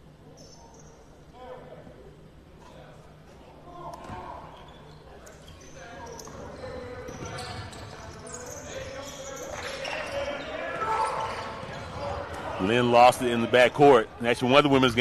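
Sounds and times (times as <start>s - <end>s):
sneaker squeaks: 0.3s - 1.1s, 4.0s - 12.4s
players calling out: 6.0s - 15.0s.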